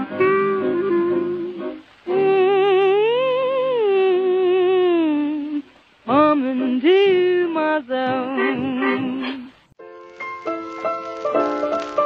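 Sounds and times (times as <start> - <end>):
muffled vintage popular song: 0.0 - 12.0.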